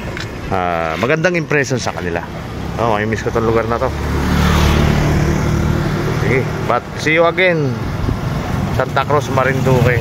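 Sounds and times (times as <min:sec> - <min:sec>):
motorcycle engine passing: 0:02.4 - 0:10.0.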